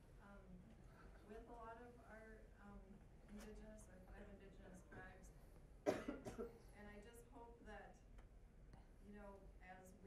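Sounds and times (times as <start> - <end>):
person coughing: 5.9 - 6.6.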